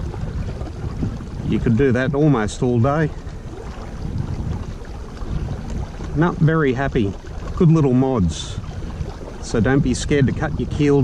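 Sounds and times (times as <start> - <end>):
kayak moving through water: 0.0 - 11.0
wind on microphone: 0.0 - 11.0.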